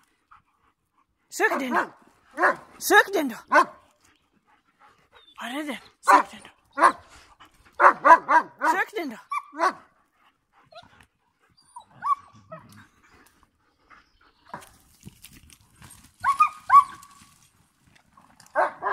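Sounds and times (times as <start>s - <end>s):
dogs yipping and barking: 1.5s - 2.7s, 3.5s - 3.8s, 5.1s - 9.9s, 10.6s - 13.3s, 15.8s - 17.3s, 18.5s - 18.9s
rustling: 14.5s - 18.6s.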